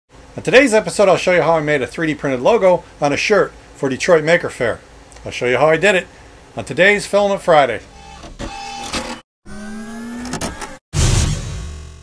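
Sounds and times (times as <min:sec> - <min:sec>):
rising whirring tone: 0:09.5 - 0:10.8.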